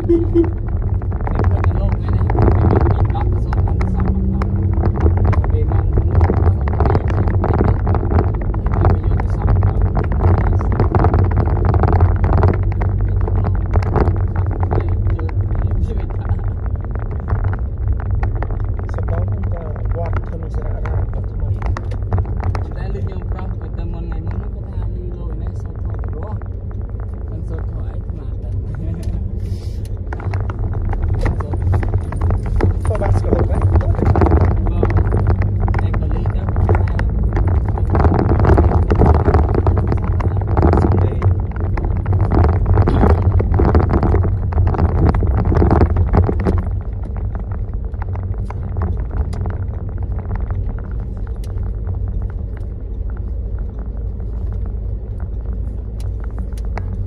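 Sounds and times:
car cabin road rumble: 0.0s - 57.0s
knocks and rattles: 30.0s - 57.0s.

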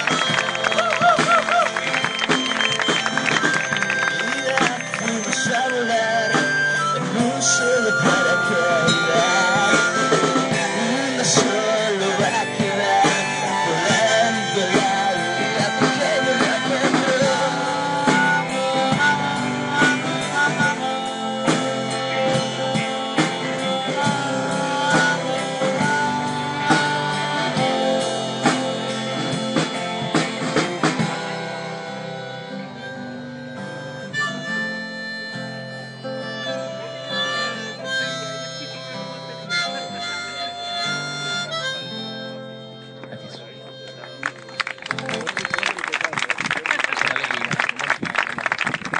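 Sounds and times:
live band with harmonica lead: 0.0s - 48.6s.

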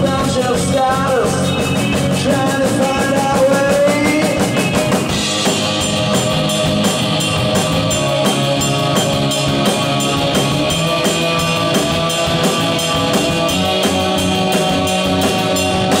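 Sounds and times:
rock band playing live: 0.0s - 16.0s.

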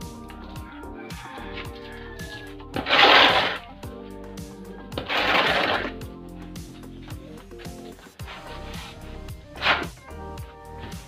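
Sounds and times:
music with steady beat: 0.0s - 11.0s
shovel scraping wet mortar: 2.8s - 3.6s, 5.0s - 6.0s.

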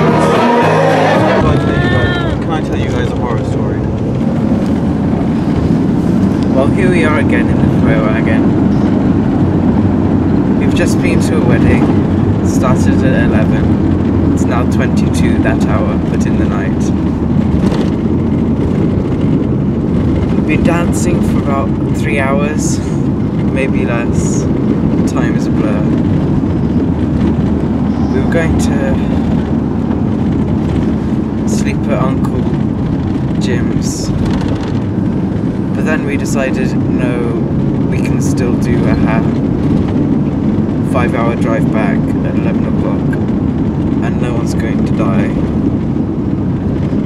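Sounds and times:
van engine and tyres rumbling: 0.0s - 47.0s.

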